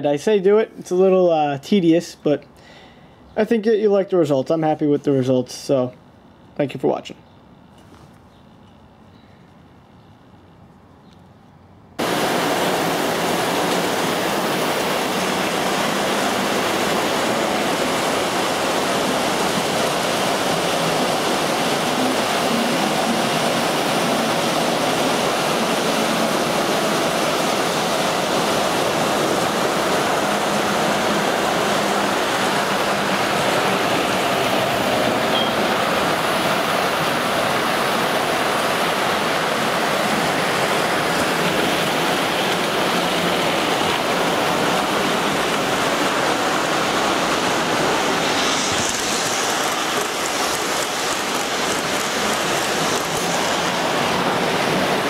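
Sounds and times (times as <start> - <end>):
model train wheels rumbling on rail: 12.0 - 55.0.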